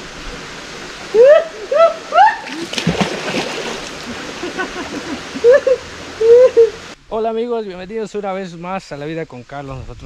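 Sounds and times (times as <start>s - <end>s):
heavy splash into river: 2.4s - 5.2s.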